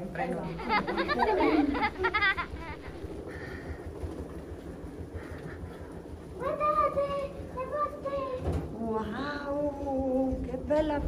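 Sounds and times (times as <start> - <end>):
suitcase rolling on carpet: 0.0 - 11.0.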